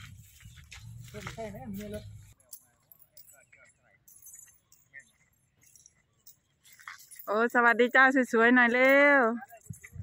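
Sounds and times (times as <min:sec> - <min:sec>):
faint high-pitched clinks: 0:01.8 - 0:10.0.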